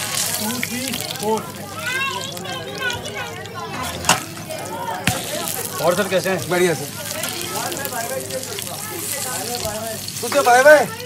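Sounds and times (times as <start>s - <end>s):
pancake sizzling in oil: 0.0s - 11.0s.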